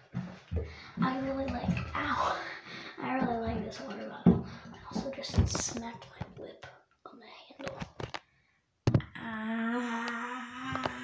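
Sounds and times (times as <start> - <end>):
girl whispering: 4.8 - 7.8.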